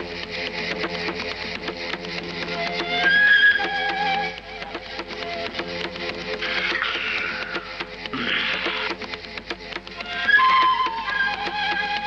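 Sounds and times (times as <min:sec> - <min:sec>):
clicking percussion rhythm: 0:00.0 - 0:12.0.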